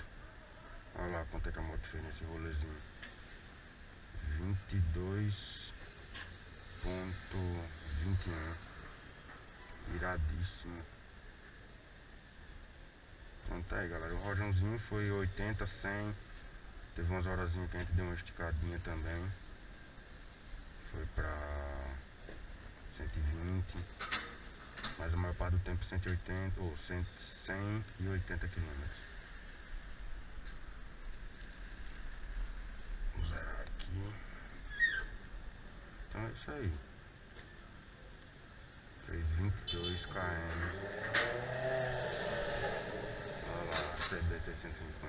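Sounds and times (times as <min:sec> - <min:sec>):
steady faint hiss: 0:00.0 - 0:45.0
motorcycle engine rumbling: 0:28.6 - 0:45.0.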